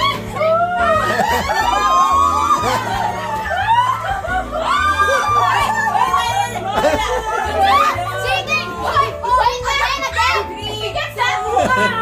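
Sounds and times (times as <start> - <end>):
people shouting and laughing: 0.0 - 12.0.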